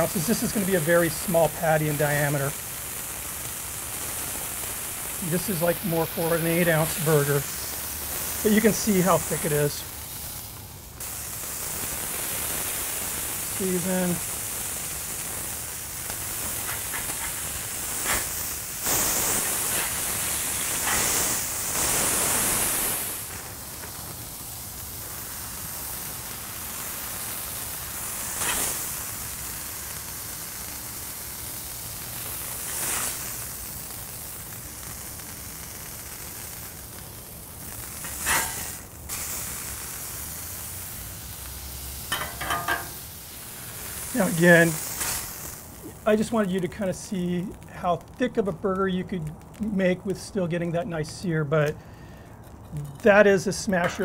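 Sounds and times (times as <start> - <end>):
patties sizzling on a griddle: 0.0 - 54.0
metal spatula scraping griddle: 16.6 - 17.4, 18.0 - 18.3, 38.0 - 38.8, 42.1 - 43.0, 52.6 - 54.0.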